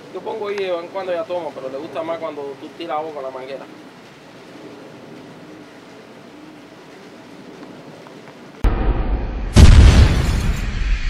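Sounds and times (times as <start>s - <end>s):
faint outdoor background: 0.0s - 11.0s
heavy hit trailing into hiss: 8.6s - 11.0s
loud low rumble: 8.6s - 11.0s.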